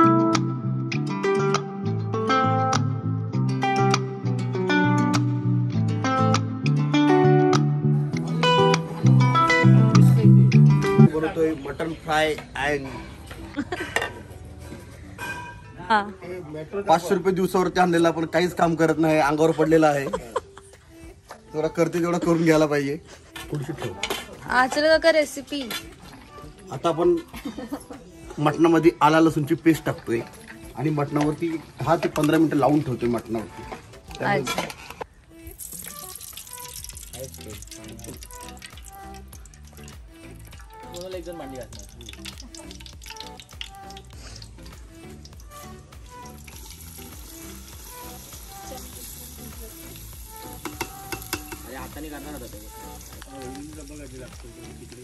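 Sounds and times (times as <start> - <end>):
steel bowls and spoons clinking: 14.8 - 15.8, 50.6 - 52.5
oil and spices sizzling in pot: 28.6 - 55.0.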